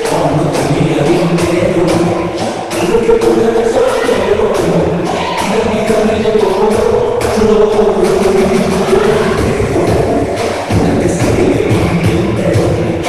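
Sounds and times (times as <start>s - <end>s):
loud dance music: 0.0s - 13.0s.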